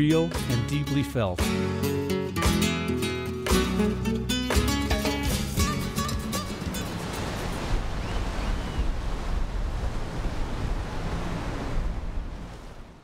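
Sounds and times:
sea waves washing ashore: 5.6s - 13.0s.

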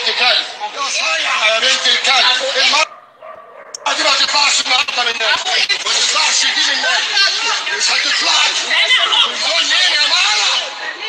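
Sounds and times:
loud strained voice: 3.8s - 11.0s.

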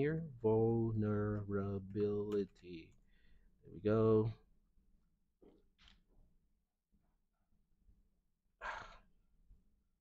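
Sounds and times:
person sighing: 8.6s - 9.2s.

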